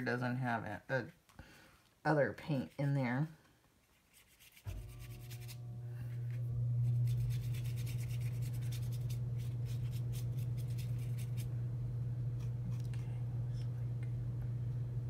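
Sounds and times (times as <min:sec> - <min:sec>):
fingers rubbing on paper: 0:03.9 - 0:05.6, 0:06.9 - 0:11.5
steady low hum: 0:04.7 - 0:15.0.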